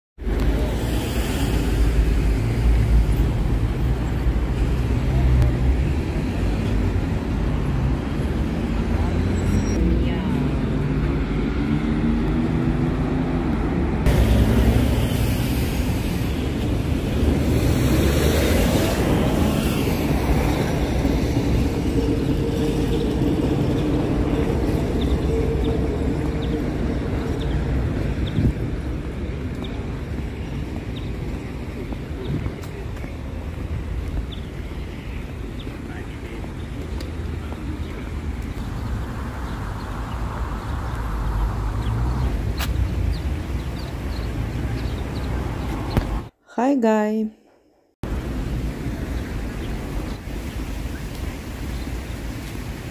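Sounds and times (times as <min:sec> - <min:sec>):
road traffic passing: 0:00.2 - 0:52.9
wind on microphone: 0:10.4 - 0:35.9.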